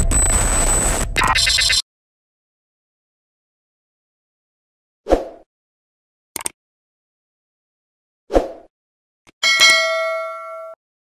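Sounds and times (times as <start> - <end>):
small click: 6.4 - 6.6
bright notification bell ding: 9.4 - 10.8.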